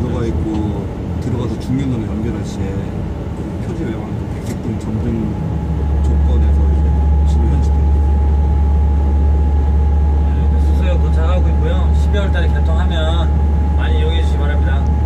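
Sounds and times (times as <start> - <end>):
people talking: 0.0 - 3.0, 3.6 - 8.2, 10.2 - 15.0
train cab low drone: 0.0 - 15.0
thin whine: 3.7 - 15.0.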